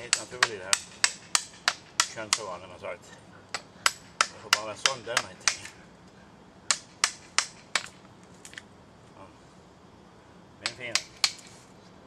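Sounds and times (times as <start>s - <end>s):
hand tools striking wood: 0.0s - 2.6s, 3.5s - 5.8s, 6.7s - 8.6s, 10.6s - 11.6s.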